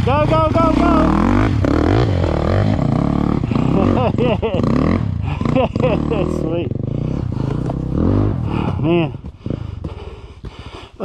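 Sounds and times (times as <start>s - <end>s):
dirt bike engine running: 0.0s - 11.0s.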